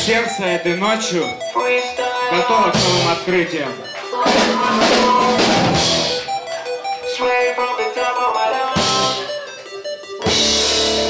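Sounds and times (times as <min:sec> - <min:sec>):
keyboard playing single notes: 0:00.0 - 0:11.0
heavy guitars: 0:01.2 - 0:11.0
drums: 0:02.5 - 0:11.0.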